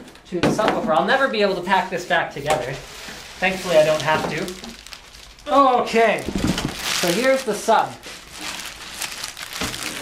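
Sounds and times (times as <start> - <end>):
plastic bag rustling: 1.0 - 10.0.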